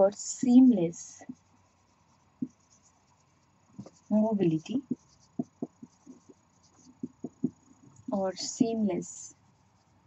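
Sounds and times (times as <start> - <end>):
marker scratching on whiteboard: 0.0 - 10.0
soft knock: 4.8 - 6.3, 7.0 - 7.6.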